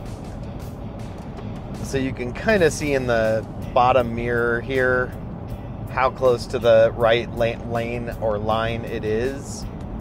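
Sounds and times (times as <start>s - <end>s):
quiet music on car stereo: 0.0s - 10.0s
road noise inside vehicle: 0.0s - 10.0s.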